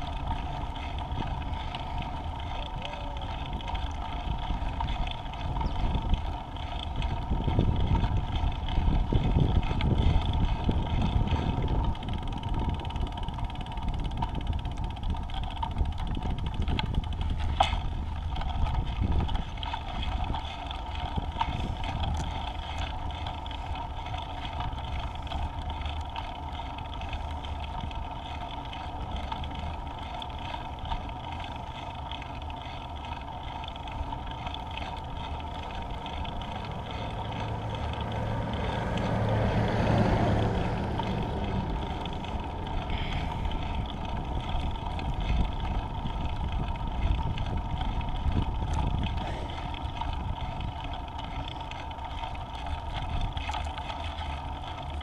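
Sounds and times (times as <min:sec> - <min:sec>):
scooter wheels rolling: 0:00.0 - 0:55.0
wind over microphone: 0:00.0 - 0:55.0.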